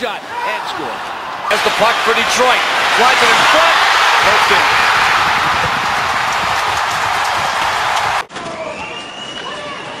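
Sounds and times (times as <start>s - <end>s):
arena crowd roaring: 0.0s - 8.3s
arena crowd noise: 0.0s - 10.0s.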